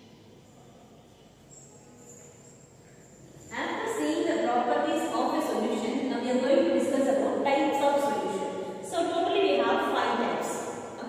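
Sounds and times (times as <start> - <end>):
woman lecturing: 3.5 - 11.0.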